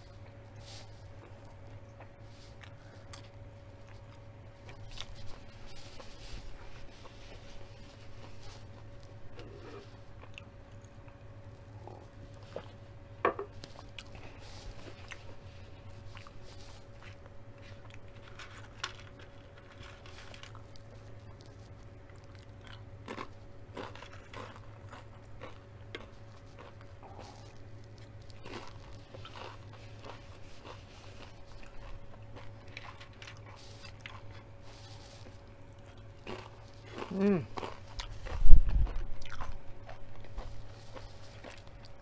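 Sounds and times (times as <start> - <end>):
steady low hum: 0.0 - 42.0
chips being crunched and chewed: 13.6 - 42.0.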